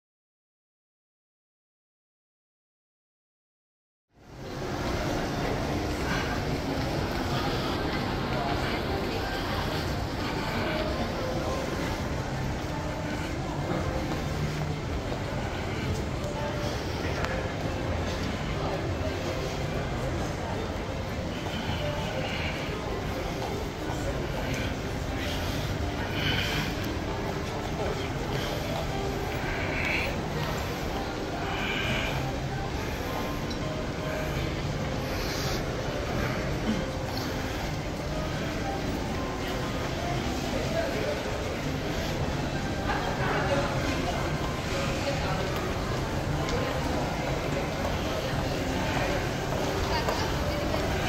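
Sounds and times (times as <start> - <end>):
indistinct voices: 4.4 - 51.0.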